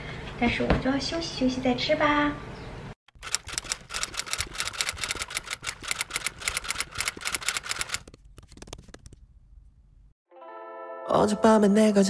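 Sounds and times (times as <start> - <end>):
keyboard typing: 3.1 - 9.2.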